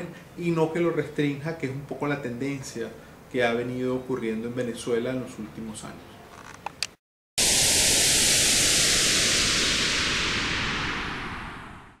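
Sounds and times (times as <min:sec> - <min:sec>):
loud static hiss: 0:07.4 - 0:11.8.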